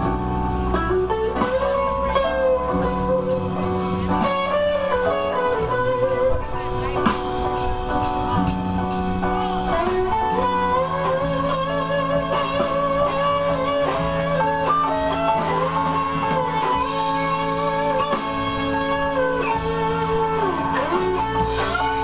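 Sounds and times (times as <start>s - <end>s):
electric blues band playing: 0.0s - 22.0s
electric guitar lead with bends: 0.0s - 22.0s.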